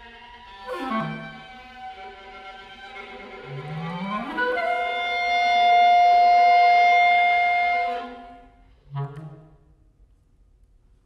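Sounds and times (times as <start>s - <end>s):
clarinet and viola chamber music: 0.0s - 9.6s.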